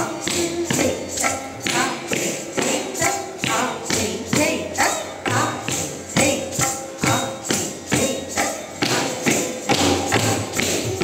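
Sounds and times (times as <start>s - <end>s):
ankle bells jingling: 0.0s - 11.0s
background music: 0.0s - 11.0s.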